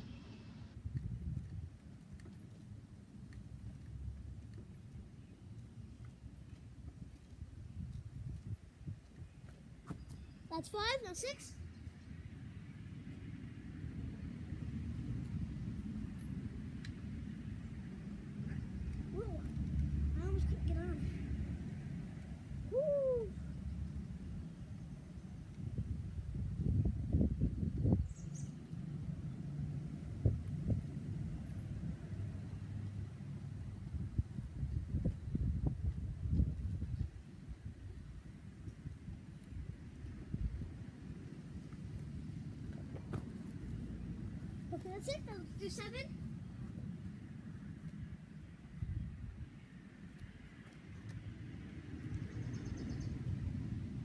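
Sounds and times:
wind rumbling on microphone: 0.0 - 2.8, 5.8 - 10.1, 11.6 - 54.0.

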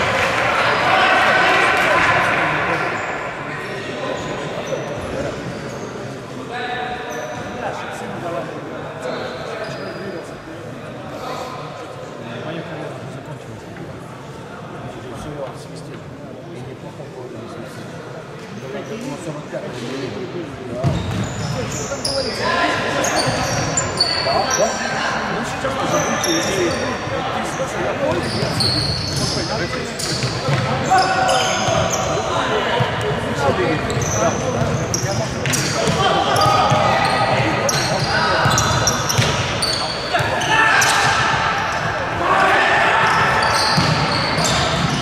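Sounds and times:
players calling out: 20.8 - 45.0.

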